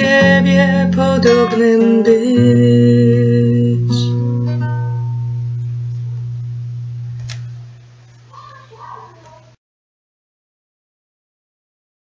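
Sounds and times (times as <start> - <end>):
acoustic guitar low note ringing: 0.0 - 8.6.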